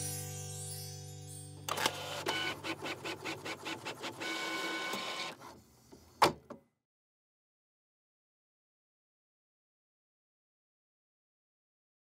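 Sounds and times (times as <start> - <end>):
printer whirring: 1.7 - 6.4.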